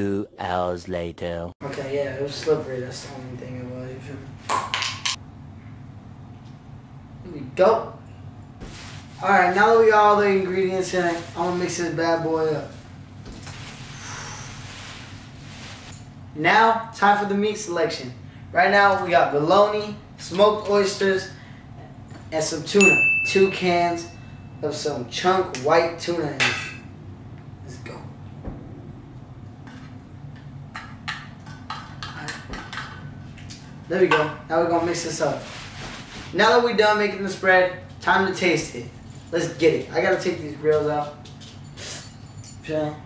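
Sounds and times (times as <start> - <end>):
plastic bag rustling and crinkling: 8.6 - 16.1, 34.7 - 36.6.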